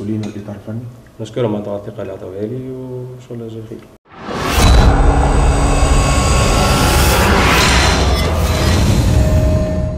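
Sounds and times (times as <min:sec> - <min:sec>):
loud rushing noise: 0:04.1 - 0:09.9
deep rumble: 0:04.3 - 0:09.9.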